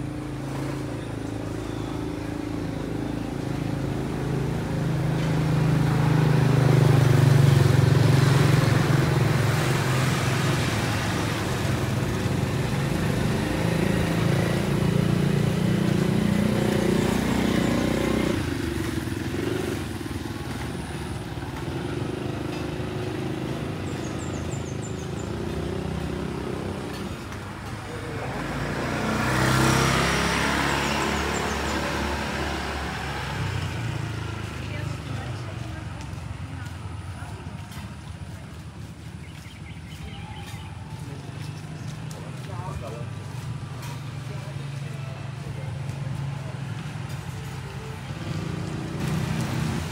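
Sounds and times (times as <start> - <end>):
vehicle engine running close by: 0.0 - 49.9
vehicle passing: 0.0 - 49.9.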